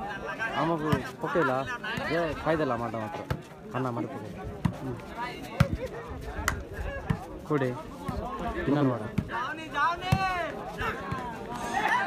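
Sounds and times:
hands slapping volleyball: 0:06.4 - 0:07.2.

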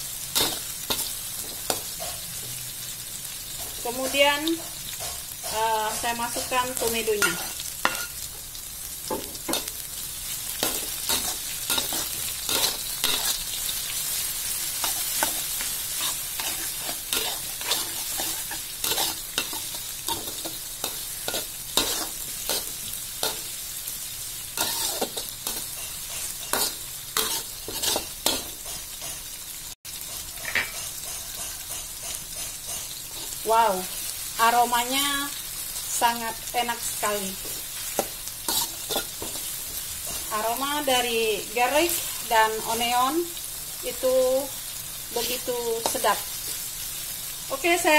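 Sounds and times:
vegetables sizzling in hot oil: 0:00.0 - 0:47.9
metal spatula scraping a wok: 0:00.2 - 0:02.4, 0:10.5 - 0:23.5, 0:24.4 - 0:29.4, 0:30.0 - 0:34.6, 0:37.0 - 0:40.5.

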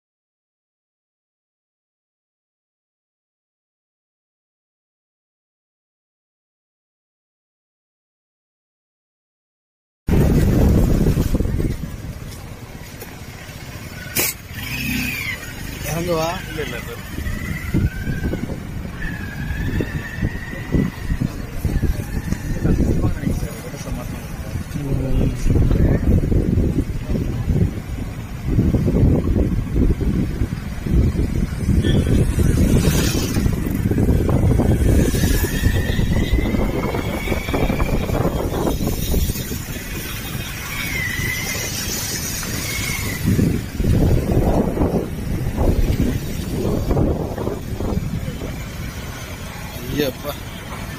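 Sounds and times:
wind buffeting on microphone: 0:10.1 - 0:13.8, 0:14.5 - 0:50.9
motorcycles and street traffic rumbling: 0:10.1 - 0:50.9.

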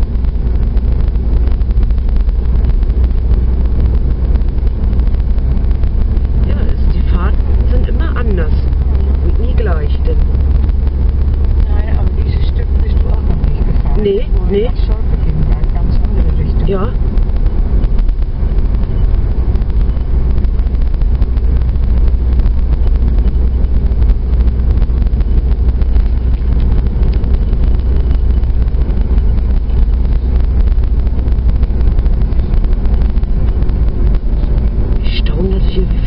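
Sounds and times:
car engine and road noise: 0:00.0 - 0:36.0
wind: 0:00.0 - 0:36.0.

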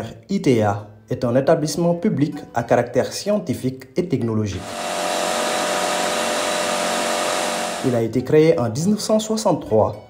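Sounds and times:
machinery whirring: 0:04.6 - 0:08.0.

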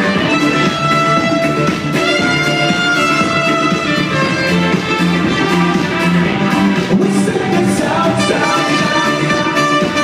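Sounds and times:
live pop band playing loudly: 0:00.0 - 0:10.0.

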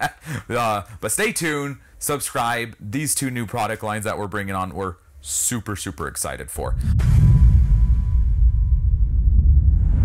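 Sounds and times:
deep steady rumble: 0:06.6 - 0:10.0.

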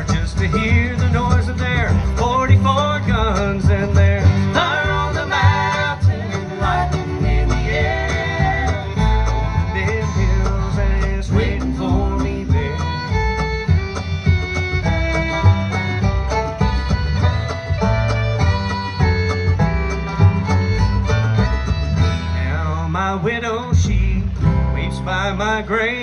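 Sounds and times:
fiddle sliding notes: 0:00.0 - 0:23.0
bluegrass band playing: 0:00.0 - 0:26.0.

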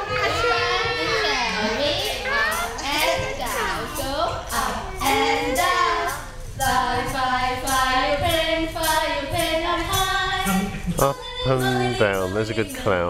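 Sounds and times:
women singing together: 0:00.0 - 0:13.0.

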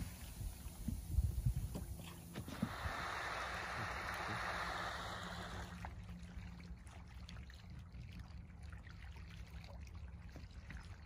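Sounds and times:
wind buffeting microphone: 0:00.0 - 0:05.1
water lapping at boat hull: 0:00.0 - 0:11.0.

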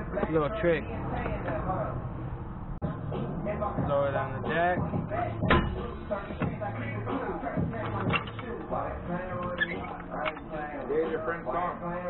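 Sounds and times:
indistinct talking: 0:00.0 - 0:12.0
sharp knock: 0:05.4 - 0:05.9.

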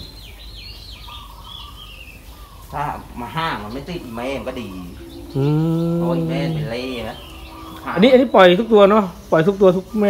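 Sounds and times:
small bird chirping: 0:00.0 - 0:10.0.

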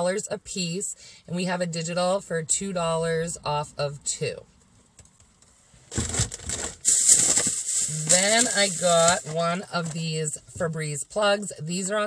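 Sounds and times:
plastic packaging crinkling: 0:05.9 - 0:10.0.

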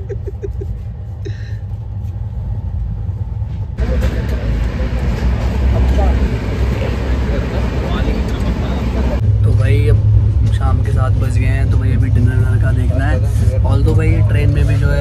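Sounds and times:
train wheel and track rumble: 0:00.0 - 0:15.0.

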